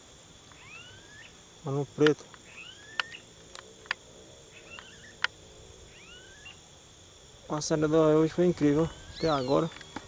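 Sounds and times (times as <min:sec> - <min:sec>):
high insect drone: 0:00.0 - 0:10.0
birds whistling rising calls: 0:00.5 - 0:01.4, 0:02.4 - 0:03.3, 0:04.5 - 0:05.3, 0:05.9 - 0:06.6, 0:08.7 - 0:10.0
sharp clicks: 0:02.0 - 0:04.0.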